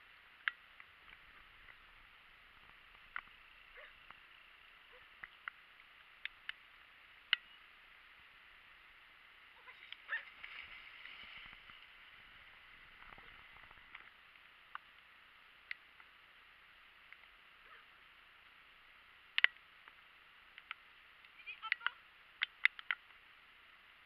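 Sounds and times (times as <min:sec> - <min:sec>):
faint steady hiss: 0:00.0 - 0:24.0.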